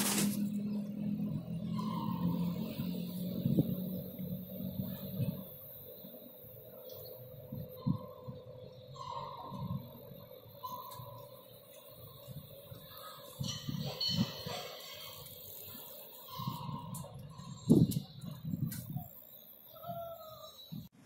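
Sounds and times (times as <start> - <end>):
steady machine hum: 0.0 - 21.0.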